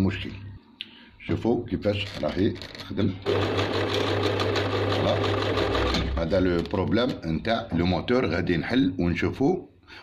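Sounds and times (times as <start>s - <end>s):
sewing machine motor humming: 3.2s - 6.1s.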